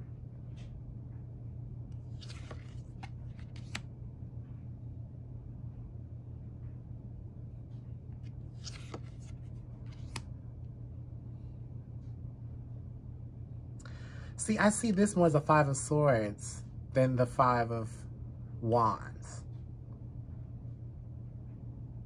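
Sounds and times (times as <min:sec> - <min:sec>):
low hum: 0:00.0 - 0:22.0
cards swishing and tapping: 0:01.9 - 0:03.9, 0:08.2 - 0:10.3.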